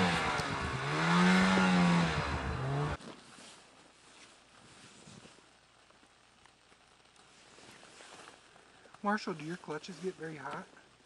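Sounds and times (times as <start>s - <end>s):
faint background hiss: 2.4s - 11.0s.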